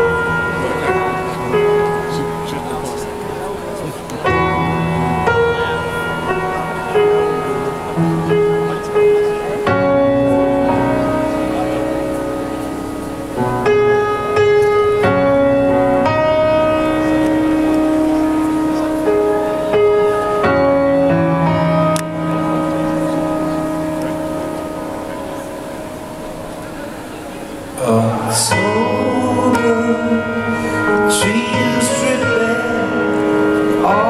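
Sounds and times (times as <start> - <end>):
arena crowd noise: 0.0 - 34.0
piano chord ringing: 0.0 - 34.0.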